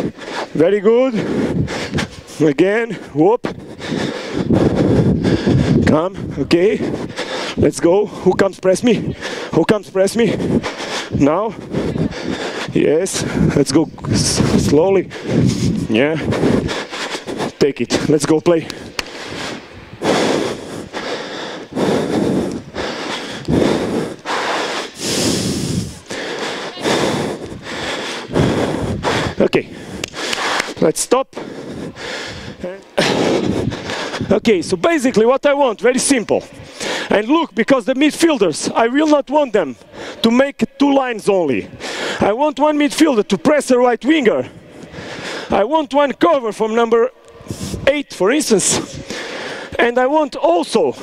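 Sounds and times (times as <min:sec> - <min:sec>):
heavy breathing: 0:00.0 - 0:35.1, 0:36.0 - 0:38.9, 0:39.6 - 0:40.8, 0:41.4 - 0:42.3, 0:44.3 - 0:45.6, 0:47.2 - 0:51.0
loud rushing noise on microphone: 0:10.2 - 0:21.0, 0:21.7 - 0:30.8.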